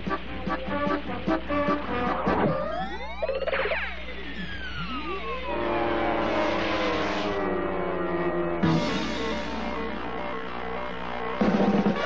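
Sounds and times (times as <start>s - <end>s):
cartoon music with swooping glides: 0.0s - 12.0s
long falling whistle: 2.6s - 10.0s.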